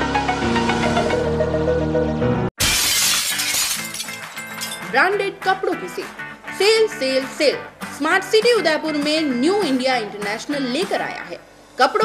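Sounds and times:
background music: 0.0s - 2.5s, 3.2s - 12.0s
glass shattering: 2.6s - 5.0s.

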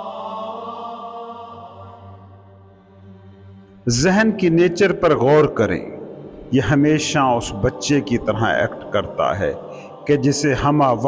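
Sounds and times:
low sustained music drone: 0.0s - 11.0s
man narrating: 3.9s - 11.0s.

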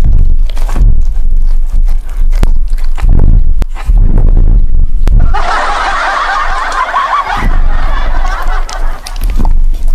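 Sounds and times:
chorus of chuckling laughter: 5.2s - 9.4s.

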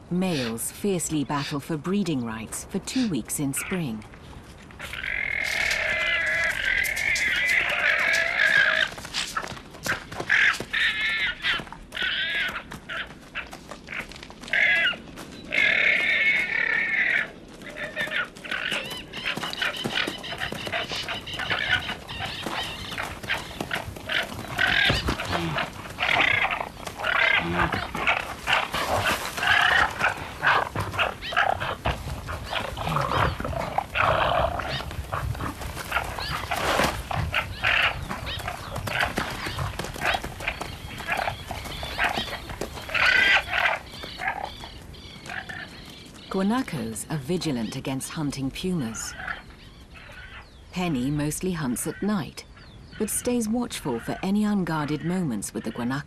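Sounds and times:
hooves knocking and scuffling: 0.2s - 50.0s
animals calling shrilly: 10.2s - 46.4s.

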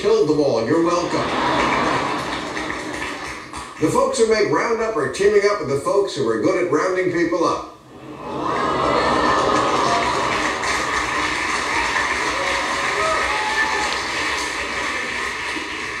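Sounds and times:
audience laughing: 0.9s - 3.4s, 7.9s - 12.2s
audience cheering and applauding: 1.2s - 3.9s, 8.2s - 16.0s.

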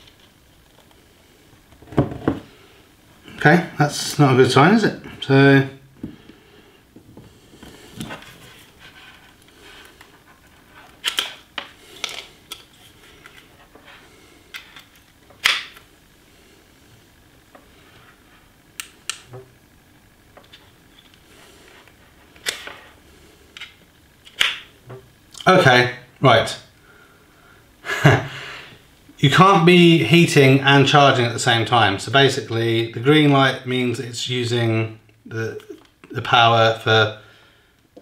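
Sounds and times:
handling noise: 1.7s - 2.5s.

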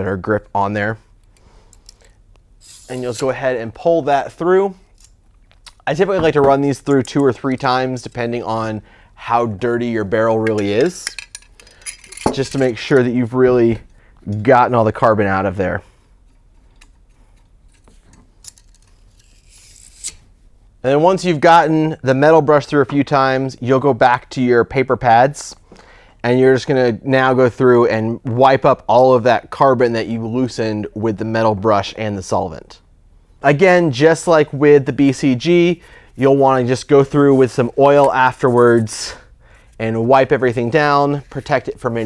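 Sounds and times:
metal rod scraping: 1.7s - 3.6s, 16.2s - 20.2s
metal rod clicks and scraping: 4.9s - 5.8s, 10.4s - 13.0s, 16.2s - 20.2s.

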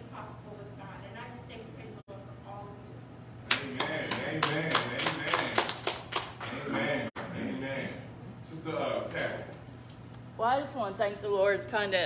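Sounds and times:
hand clapping: 3.5s - 6.8s.

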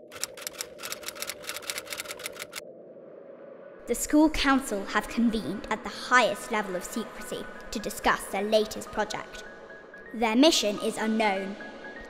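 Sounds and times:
typewriter keys clacking: 0.0s - 2.6s.

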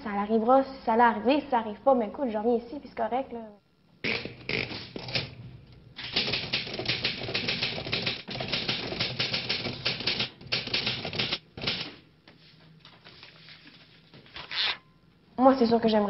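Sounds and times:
rapid irregular clicking: 4.2s - 12.0s.

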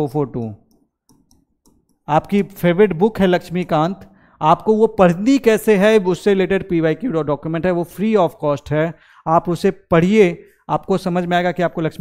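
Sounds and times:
pen tapping on display board: 0.7s - 2.1s
man's voice: 2.1s - 12.0s.

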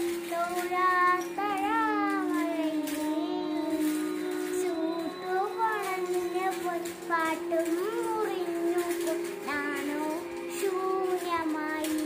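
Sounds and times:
girl singing long held notes: 0.0s - 12.0s.

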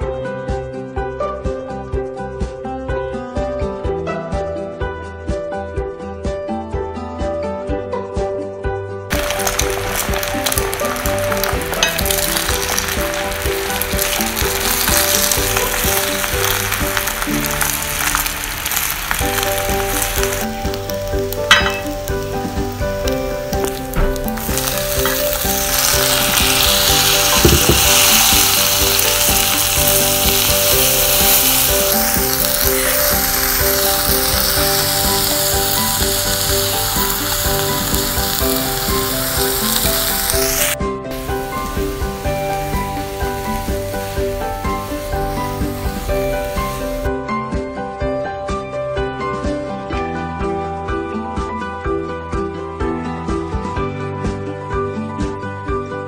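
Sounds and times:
egg sizzling in a frying pan: 9.1s - 47.1s.

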